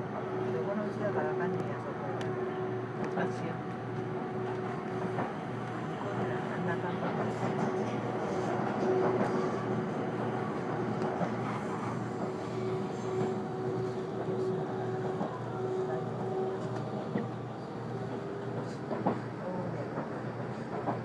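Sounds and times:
train wheels on rail: 2.2s - 21.0s.

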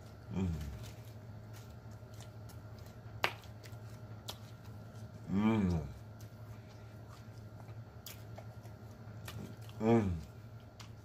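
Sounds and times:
close chewing: 0.0s - 11.0s
low steady hum: 0.0s - 11.0s.

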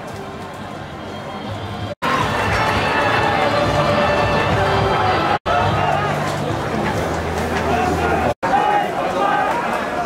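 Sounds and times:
music playing: 0.0s - 8.3s
stadium crowd noise: 0.0s - 10.0s.

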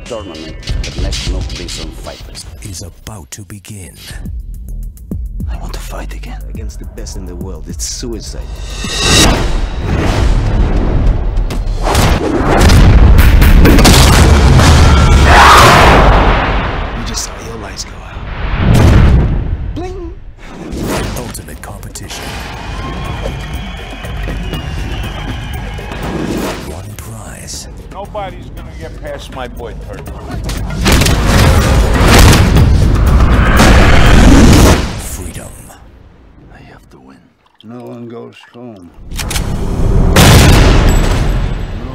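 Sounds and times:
film trailer score: 0.0s - 41.9s
deep booming hits: 8.4s - 17.1s, 18.3s - 19.8s, 30.8s - 35.1s, 39.5s - 41.8s.

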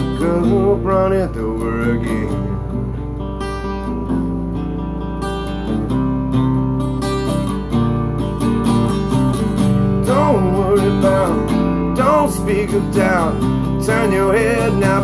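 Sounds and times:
person singing: 0.0s - 2.6s, 10.0s - 15.0s
acoustic guitar strumming: 0.0s - 15.0s.

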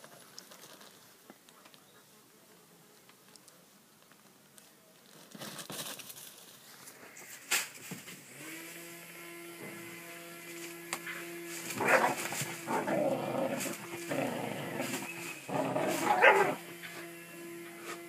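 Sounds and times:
steady low hum: 6.8s - 18.0s
dog barking and growling: 11.6s - 16.8s.

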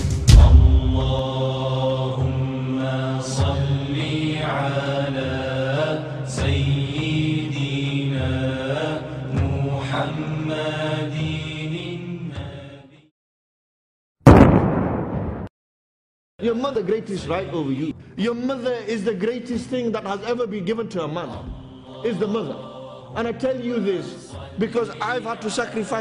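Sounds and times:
person chanting: 0.3s - 12.2s.

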